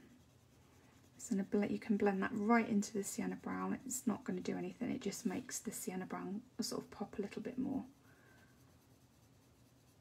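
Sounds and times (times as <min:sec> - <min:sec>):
pencil scratching on paper: 0:00.0 - 0:10.0.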